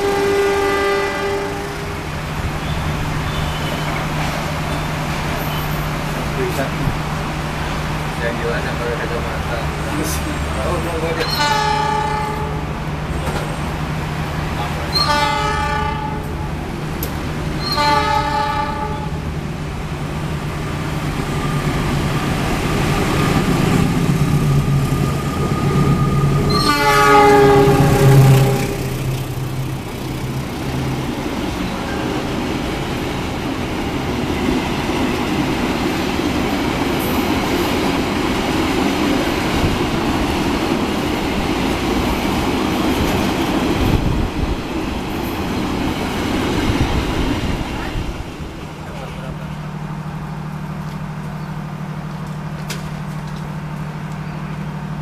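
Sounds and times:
locomotive horn blasts: 0.0 - 2.0, 11.2 - 12.7, 14.9 - 16.5, 17.6 - 19.2, 25.8 - 29.2
locomotive engine humming: 0.0 - 55.0
train wagons rolling on rails: 0.0 - 55.0.

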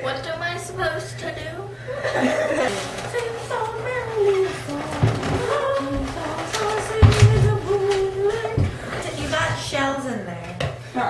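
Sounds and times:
girl singing or humming: 2.7 - 9.9.

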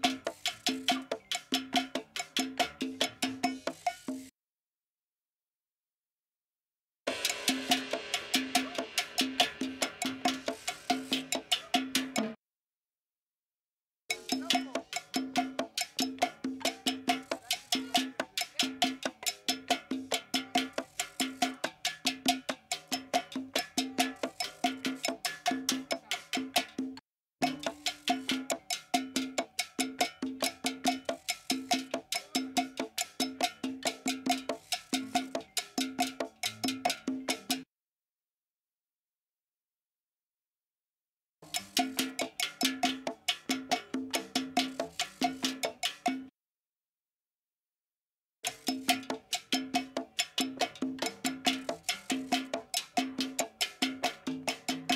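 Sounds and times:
cowbell percussion pattern: 0.0 - 4.3, 7.1 - 12.4, 14.1 - 37.7, 41.4 - 46.3, 48.4 - 54.9.

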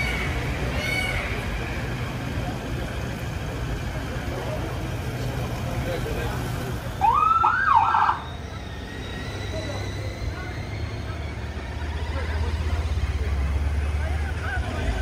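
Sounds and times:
low rumble of vehicles: 0.0 - 15.0
police siren whoop and warble: 6.9 - 12.4.

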